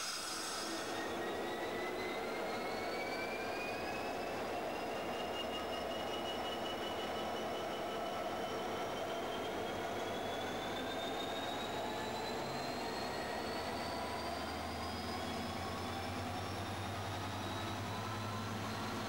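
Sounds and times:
high whine climbing in pitch: 0:00.0 - 0:02.5
diesel locomotive passing: 0:00.0 - 0:02.6.

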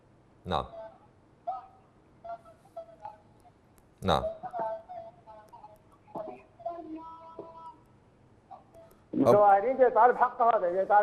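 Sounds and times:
man's voice over telephone: 0:00.5 - 0:03.2, 0:04.0 - 0:07.8, 0:09.2 - 0:11.0.

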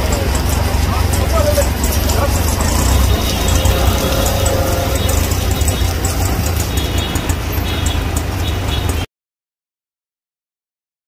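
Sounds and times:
passing traffic rumble: 0:00.0 - 0:09.1.

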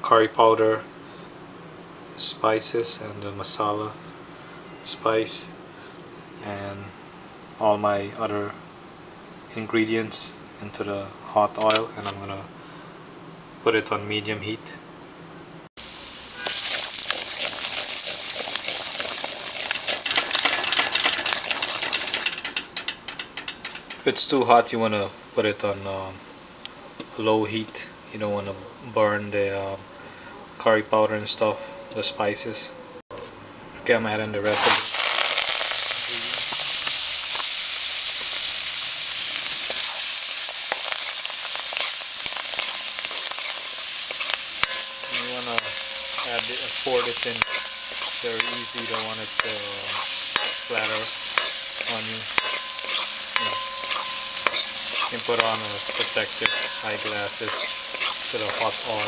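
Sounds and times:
spices sizzling in hot oil: 0:15.8 - 0:29.5, 0:34.4 - 0:59.0
oil popping: 0:16.4 - 0:24.0, 0:34.6 - 0:37.5
metal spoon clicking on pan: 0:20.0 - 0:24.0, 0:44.1 - 0:46.3, 0:47.0 - 0:59.0.

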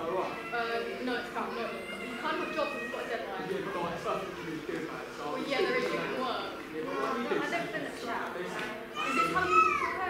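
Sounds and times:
children speaking and calling out: 0:00.2 - 0:04.4, 0:08.9 - 0:10.0.

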